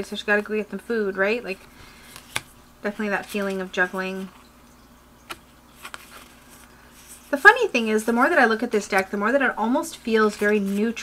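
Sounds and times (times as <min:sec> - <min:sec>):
cards clicking as slid: 0:02.0 - 0:02.5.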